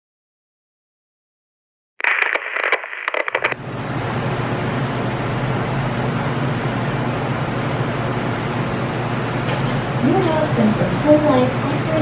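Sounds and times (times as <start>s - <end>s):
handling noise crackle: 2.0s - 3.6s
low rumbling hum with hiss: 3.3s - 12.0s.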